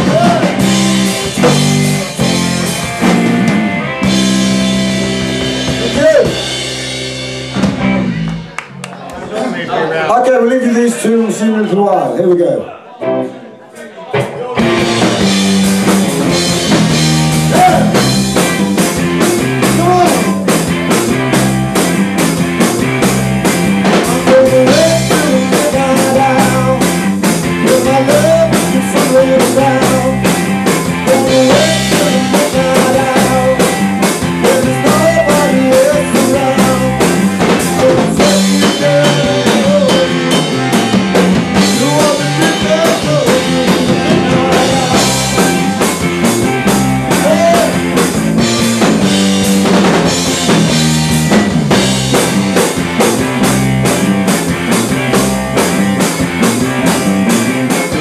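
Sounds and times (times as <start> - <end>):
live rock band playing: 0.0 - 12.4, 13.0 - 58.0.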